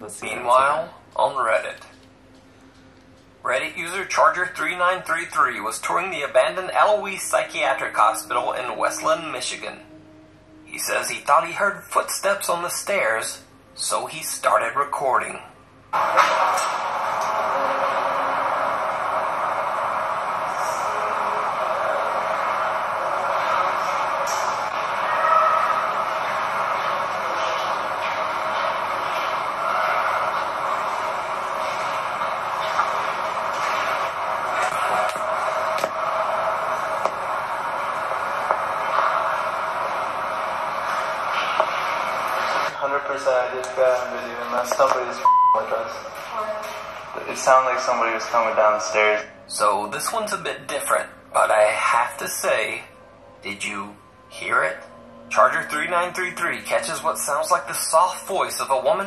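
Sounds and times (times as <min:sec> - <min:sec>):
few voices: 0:02.8 - 0:59.0
short beep: 0:45.2 - 0:45.7.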